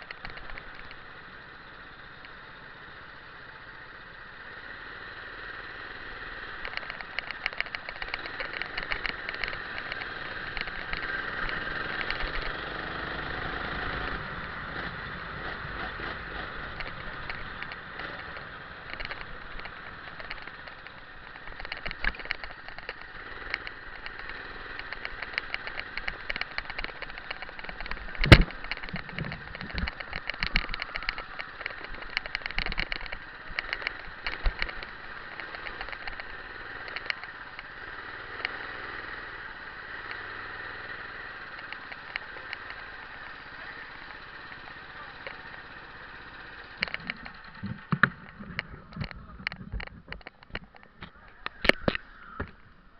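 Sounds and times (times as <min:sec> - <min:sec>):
small clicks and rattles: 0:00.0 - 0:02.6, 0:05.2 - 0:52.8
go-kart engine running: 0:00.0 - 0:52.9.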